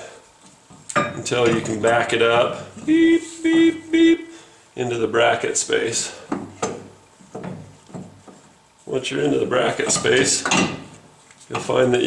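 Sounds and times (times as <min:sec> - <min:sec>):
light metallic knocks and clunks: 0:06.3 - 0:08.5, 0:09.8 - 0:11.8.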